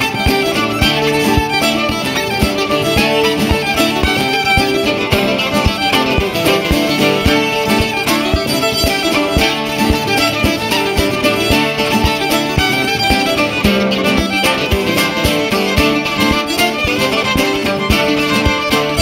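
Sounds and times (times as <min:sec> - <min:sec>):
fiddle melody: 0:00.0 - 0:19.0
steady drum beat: 0:00.0 - 0:19.0.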